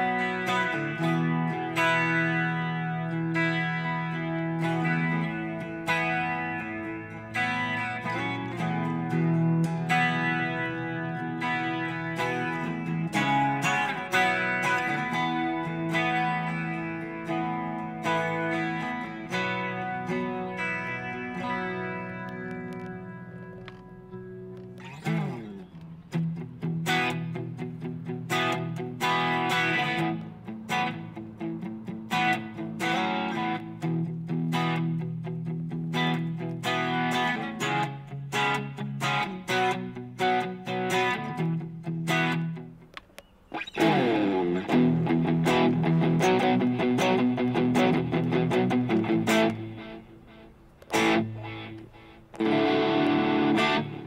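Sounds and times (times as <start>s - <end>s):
guitar through small amp: 0.0s - 54.0s.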